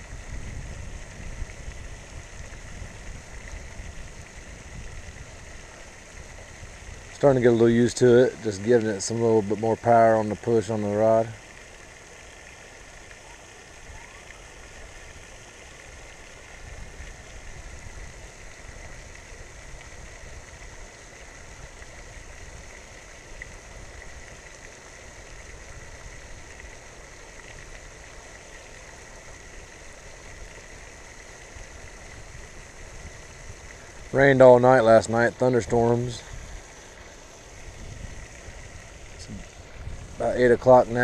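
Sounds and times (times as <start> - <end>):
fountain splashing: 0.0 - 41.0.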